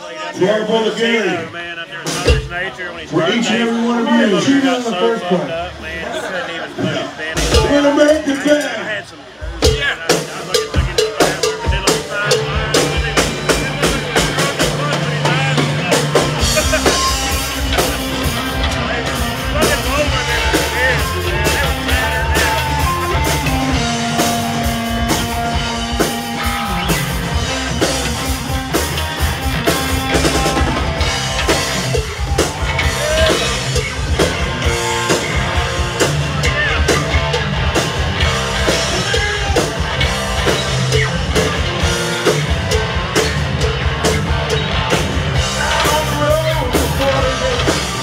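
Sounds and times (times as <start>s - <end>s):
drum kit beat: 2.0s - 2.8s, 7.3s - 8.8s, 9.4s - 48.0s
electric guitars: 9.2s - 48.0s
electric bass: 12.2s - 48.0s.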